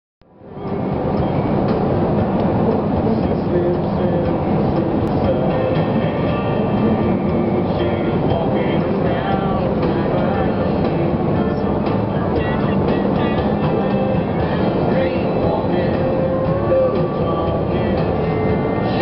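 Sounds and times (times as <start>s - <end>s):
car road and engine rumble: 0.2s - 19.0s
country music: 0.3s - 19.0s.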